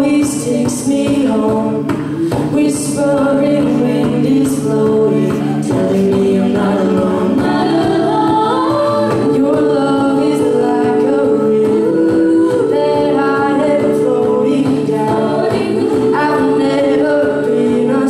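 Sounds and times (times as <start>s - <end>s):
a cappella group singing: 0.0s - 18.0s.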